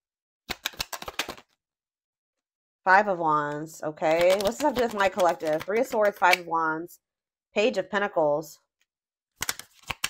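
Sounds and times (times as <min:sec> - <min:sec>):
cards being shuffled: 0:00.5 - 0:01.6, 0:04.2 - 0:06.4, 0:09.4 - 0:10.0.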